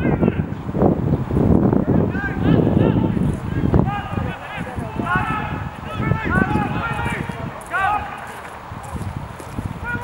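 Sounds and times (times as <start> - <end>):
distant players shouting: 1.9 - 8.5, 9.8 - 10.0.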